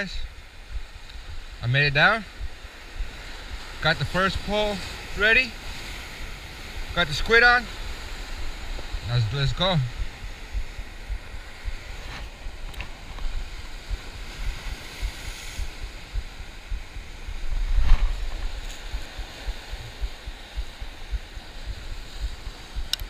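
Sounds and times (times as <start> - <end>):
ocean surf breaking on rocks: 0.0 - 23.0
wind buffeting microphone: 0.0 - 23.0.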